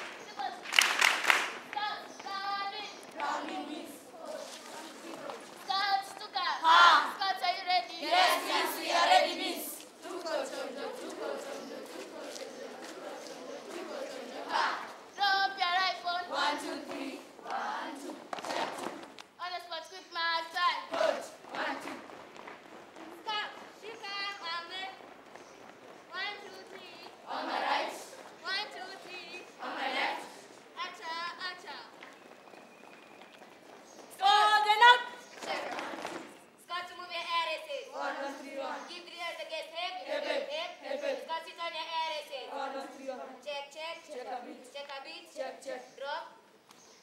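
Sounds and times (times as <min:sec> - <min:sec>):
children singing: 0:02.2 - 0:06.0, 0:06.6 - 0:19.2, 0:20.5 - 0:22.1, 0:26.1 - 0:31.1, 0:34.2 - 0:36.4, 0:37.7 - 0:39.2, 0:39.9 - 0:41.6.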